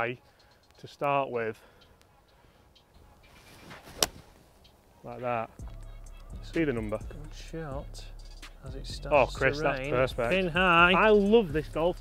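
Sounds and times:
golf club swish: 3.3 - 4.6
golf club striking ball: 3.7 - 4.3.

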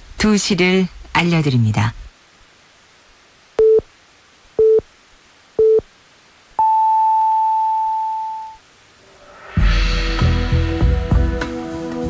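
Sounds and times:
long high beep: 6.6 - 8.6
short low beeps: 6.6 - 8.6.

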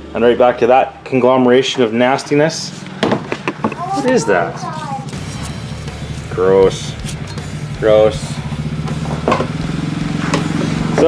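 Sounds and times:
engine idling: 0.0 - 11.0
handling knocks: 8.9 - 9.6.

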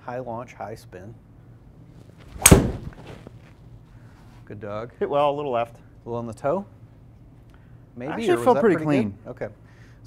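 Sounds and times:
golf club striking ball: 2.4 - 3.2.

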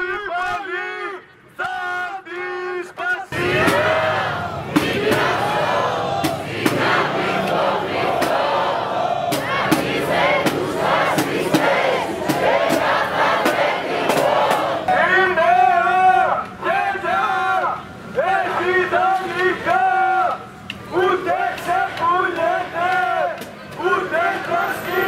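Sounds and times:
crowd chanting slogans: 0.6 - 25.0.

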